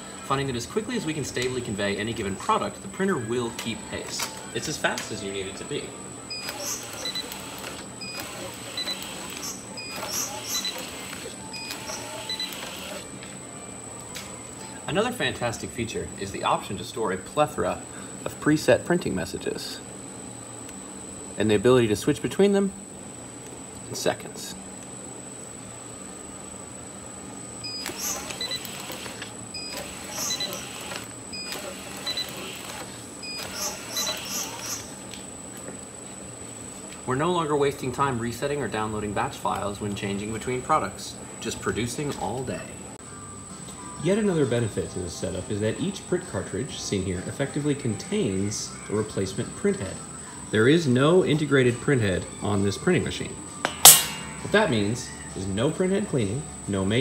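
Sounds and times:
conveyor machinery hum and whine: 0:00.0 - 0:57.0.

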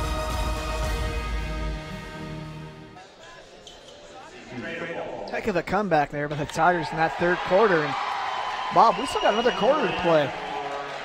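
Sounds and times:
faint court and crowd noise: 0:02.9 - 0:11.0.

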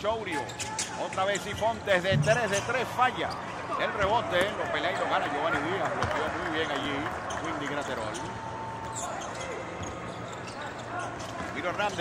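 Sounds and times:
shoe squeak: 0:00.2 - 0:03.5, 0:07.3 - 0:12.0.

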